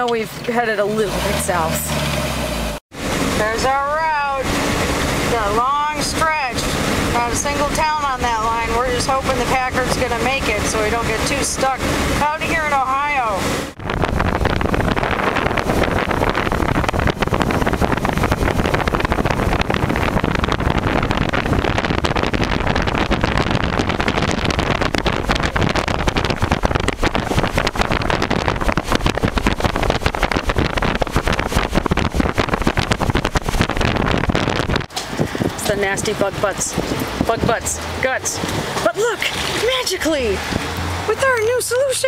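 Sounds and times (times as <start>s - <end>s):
car engine and road noise: 0.0s - 42.0s
wind buffeting microphone: 3.0s - 42.0s.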